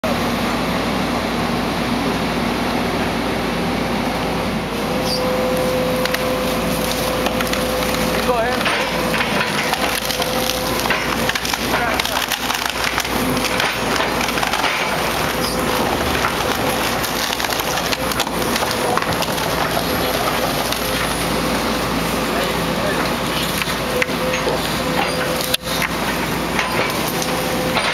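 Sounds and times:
diesel engine idling: 0:00.0 - 0:27.9.

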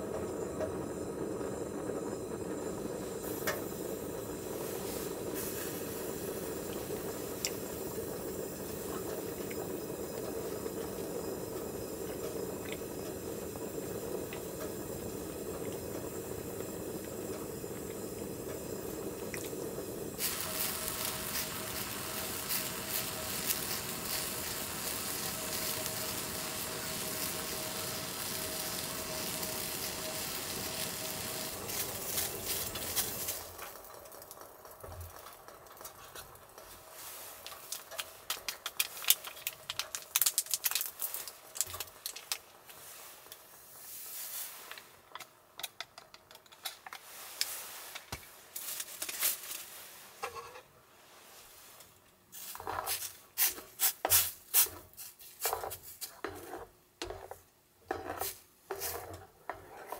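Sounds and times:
faint steady whine: 0:00.0 - 0:59.9
gas stove burner hissing: 0:00.0 - 0:59.9.

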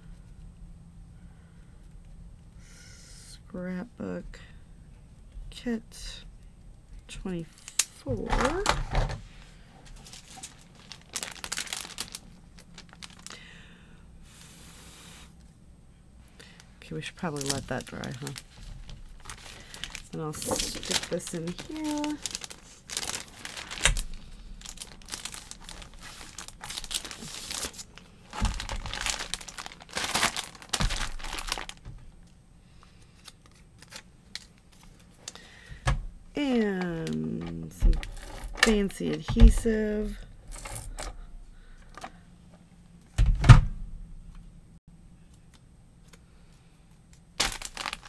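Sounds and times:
plastic sleeve crinkling: 0:09.8 - 0:13.4, 0:17.0 - 0:32.3, 0:36.4 - 0:39.2, 0:47.4 - 0:48.0.

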